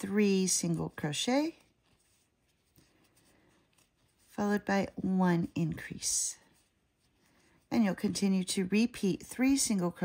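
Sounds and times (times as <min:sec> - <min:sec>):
yarn rubbing on a crochet hook: 0:00.0 - 0:10.0.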